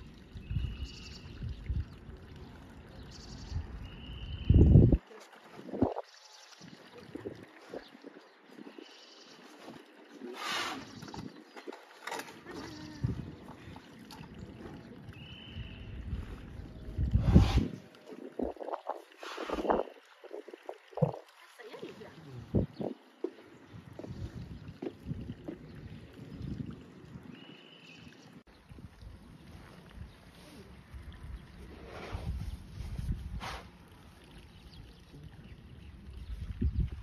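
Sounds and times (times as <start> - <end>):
wind buffeting microphone: 3.5 - 5.0, 5.6 - 8.9, 12.6 - 13.8, 15.2 - 21.3, 22.2 - 27.5, 28.5 - 33.7, 34.7 - 37.0
hissing rustle: 17.1 - 20.0.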